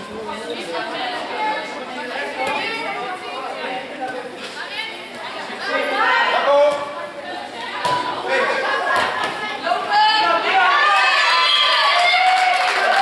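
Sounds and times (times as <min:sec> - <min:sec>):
voices chattering in a sports hall: 0:00.0 - 0:13.0.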